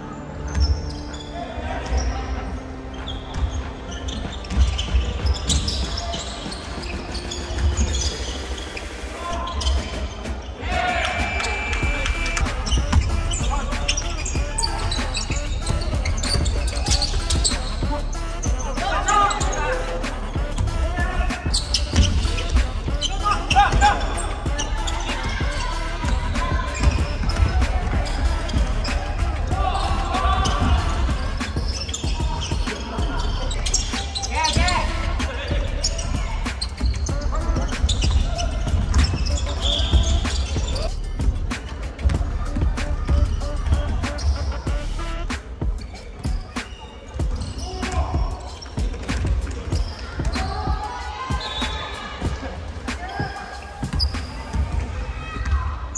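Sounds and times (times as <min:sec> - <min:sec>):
players' voices: 0:00.0 - 0:55.9
basketballs bouncing on wooden floor: 0:12.0 - 0:17.8, 0:21.5 - 0:29.1.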